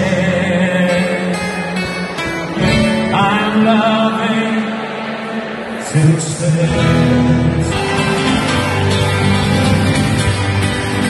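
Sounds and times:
band music with guitar: 0.0 - 11.0.

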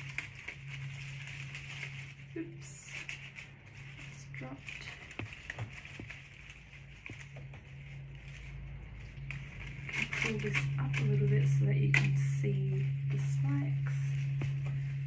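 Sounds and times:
dry flower stems rustling: 0.0 - 15.0
low hum: 0.0 - 15.0
soft voice: 2.3 - 3.2.

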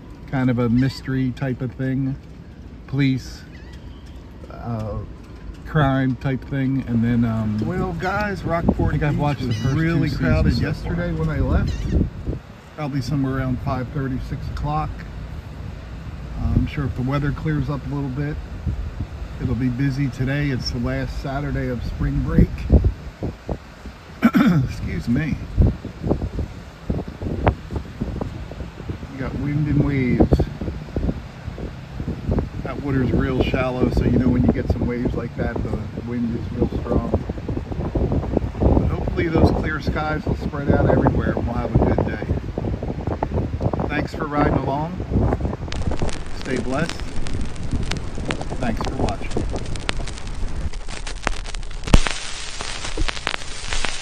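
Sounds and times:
wind buffeting microphone: 0.0 - 54.0
old film hiss: 45.7 - 54.0
sharp pop: 50.7 - 54.0.

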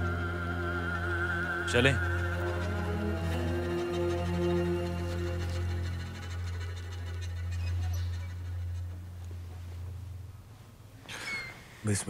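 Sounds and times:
melodic music: 0.0 - 8.9
deep bass drone: 0.0 - 10.4
faint scratchy rustling: 8.4 - 11.8.

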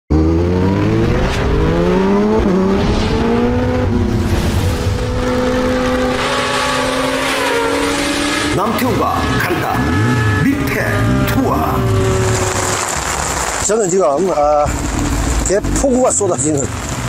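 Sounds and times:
rising whoosh: 0.1 - 8.6, 9.9 - 15.5
engine accelerating hard: 0.1 - 17.0.

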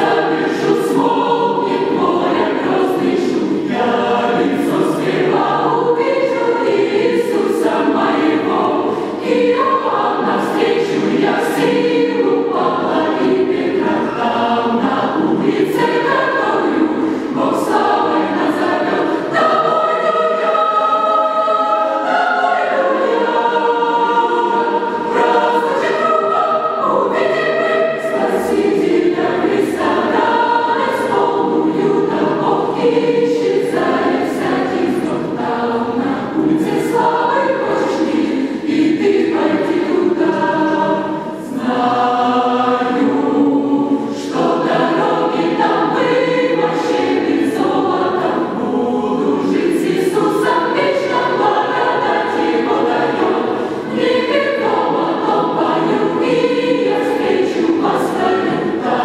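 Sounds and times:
mixed choir singing in parts: 0.0 - 59.0.

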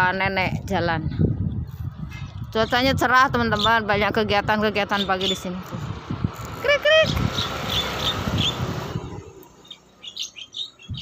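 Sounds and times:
rumbling background noise: 0.0 - 11.0
small birds chirping: 1.5 - 5.8, 6.4 - 11.0.

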